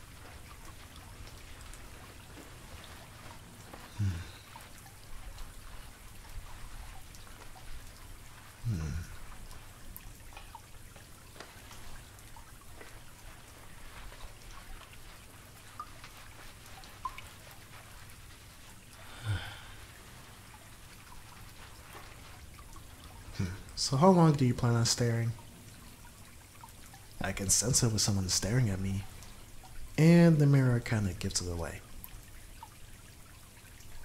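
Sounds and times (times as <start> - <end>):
shower water running: 0.0 - 34.0
water drips: 0.0 - 34.0.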